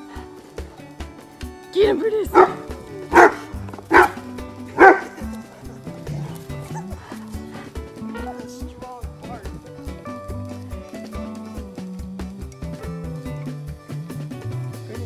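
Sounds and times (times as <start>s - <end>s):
background music: 0.0s - 15.0s
puppy barking: 2.2s - 5.5s, 6.2s - 7.2s.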